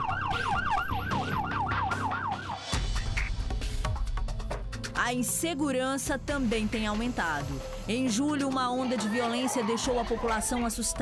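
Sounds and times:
siren yelping: 0:00.0 - 0:02.8.

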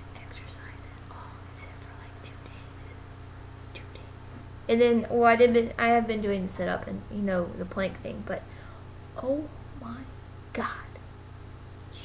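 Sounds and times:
woman whispering: 0:00.0 - 0:03.0, 0:03.7 - 0:04.4, 0:09.8 - 0:11.0
steady low hum: 0:00.0 - 0:12.0
soft breaths: 0:08.4 - 0:09.0.

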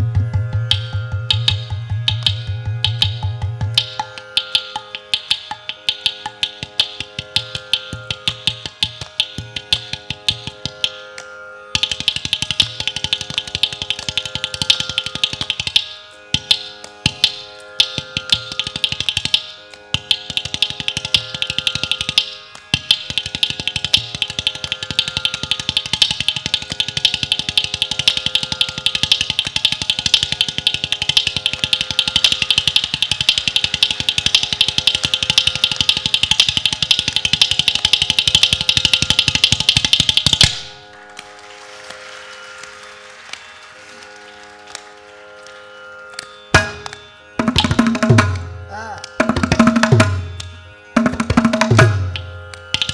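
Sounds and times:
tanpura drone: 0:00.0 - 0:52.9.

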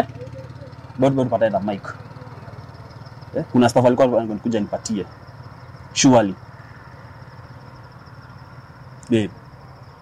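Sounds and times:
high-pitched cricket trill: 0:00.0 - 0:10.0.

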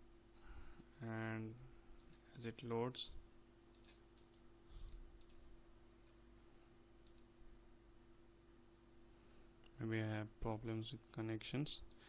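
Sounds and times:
low steady hum: 0:00.0 - 0:12.0
computer mouse clicks: 0:02.0 - 0:02.2, 0:03.7 - 0:05.4, 0:07.0 - 0:07.3.

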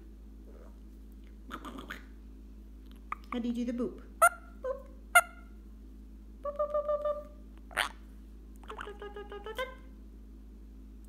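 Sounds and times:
parakeet chirp: 0:05.1 - 0:05.5, 0:06.5 - 0:08.0, 0:08.6 - 0:09.8.

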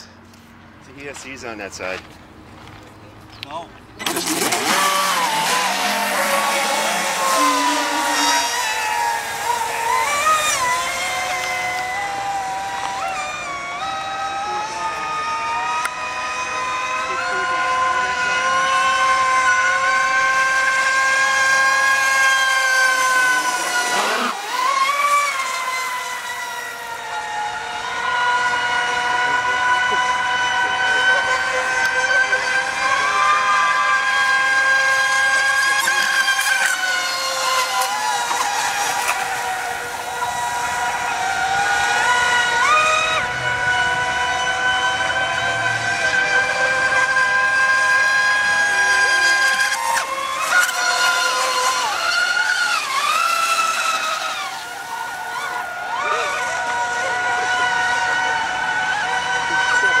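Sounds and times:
electric racing boats whining: 0:00.0 - 1:00.0.

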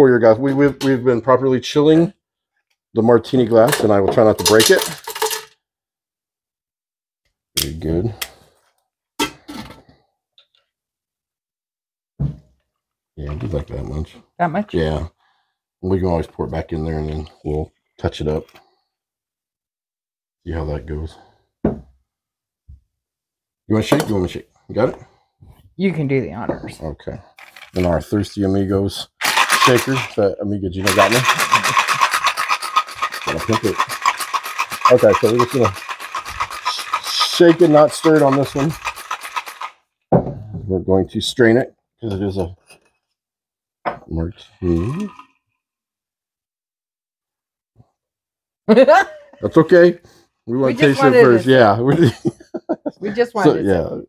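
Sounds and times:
person speaking: 0:03.0 - 0:05.1, 0:26.2 - 0:39.6, 0:44.1 - 0:45.2, 0:50.5 - 0:54.0
ice rattling in cocktail shaker: 0:03.5 - 0:05.5, 0:27.4 - 0:28.1, 0:29.2 - 0:39.8, 0:44.6 - 0:45.4, 0:50.8 - 0:51.6.

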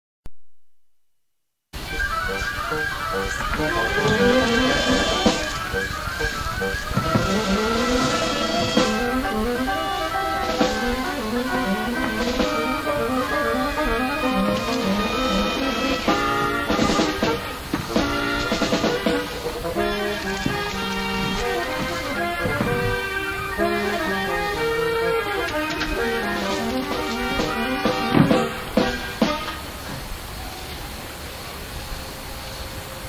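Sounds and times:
instrumental ensemble music: 0:01.8 - 0:29.8.

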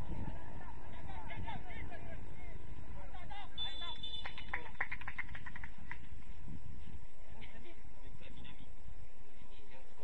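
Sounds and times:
field background noise: 0:00.0 - 0:10.0.

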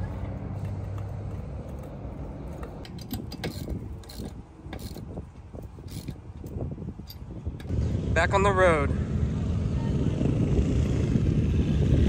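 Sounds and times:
metallic clicks and clanks: 0:00.2 - 0:05.2.

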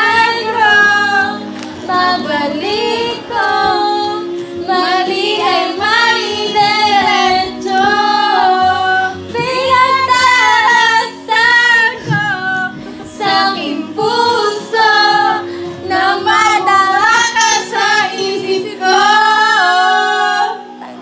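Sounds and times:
woman singing into a microphone: 0:00.0 - 0:21.0.

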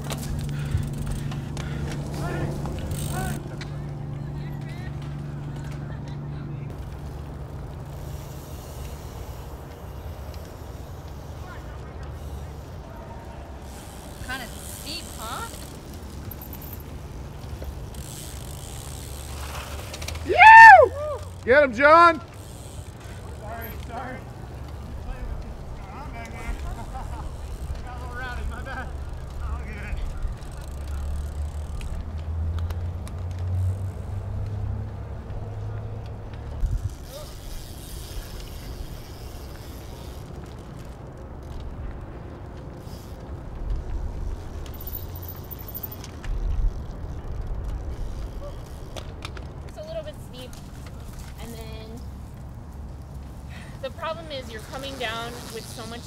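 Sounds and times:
distant spectators shouting: 0:00.0 - 0:06.8, 0:07.5 - 0:15.8, 0:20.1 - 0:33.0.

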